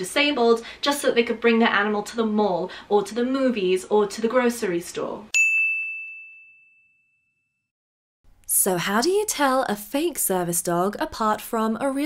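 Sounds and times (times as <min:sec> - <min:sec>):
bell-like ding: 0:05.3 - 0:07.7.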